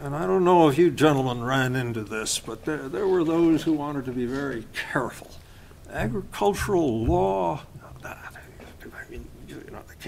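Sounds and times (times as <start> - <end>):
man whispering: 2.4 - 5.6, 7.5 - 10.0.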